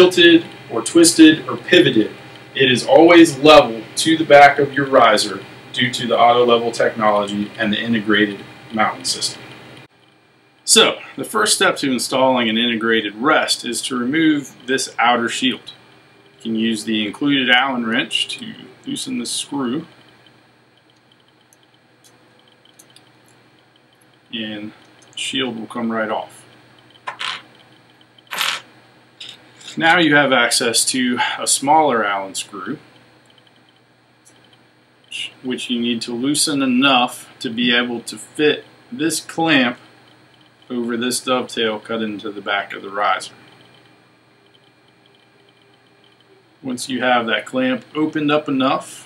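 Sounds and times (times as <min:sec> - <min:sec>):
room hiss: 0:00.0 - 0:49.0
faint wrench ticks: 0:17.4 - 0:25.2, 0:26.4 - 0:28.3, 0:32.9 - 0:35.2, 0:39.8 - 0:40.8, 0:43.4 - 0:46.4
allen wrench ticks: 0:19.9 - 0:25.2, 0:40.3 - 0:40.7.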